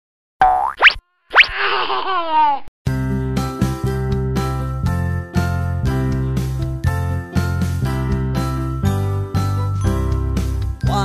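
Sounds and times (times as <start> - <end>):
cartoon voice exclaiming and laughing: 1.5 - 2.7.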